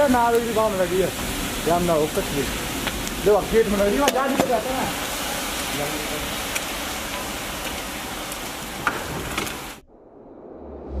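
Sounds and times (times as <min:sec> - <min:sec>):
rocket fuel burning with hiss: 0:00.0 - 0:09.8
crackles: 0:00.0 - 0:11.0
low hum: 0:09.8 - 0:11.0.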